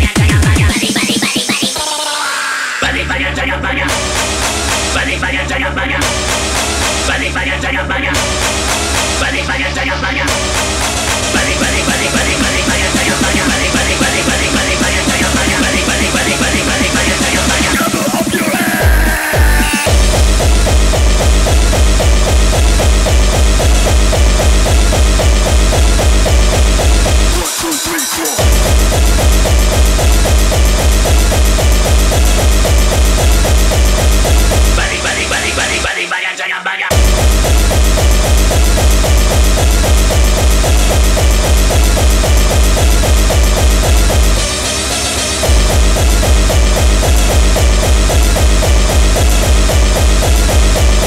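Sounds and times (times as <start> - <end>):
fast heavy kick drum beat: 0.0 - 1.8, 10.3 - 35.8, 36.9 - 51.0
hardcore dance music: 0.0 - 51.0
dense synth layers: 3.9 - 36.1, 36.9 - 51.0.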